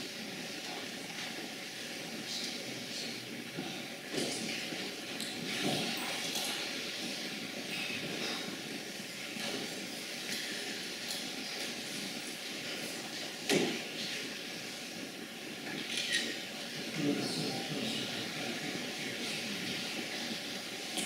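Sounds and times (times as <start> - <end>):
room noise hiss: 0.0 - 21.0.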